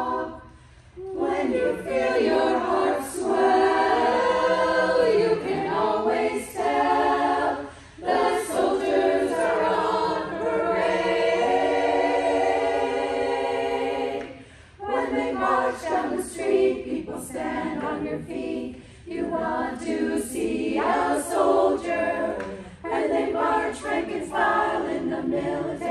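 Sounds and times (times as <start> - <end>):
women's choir singing: 0.0 - 25.9.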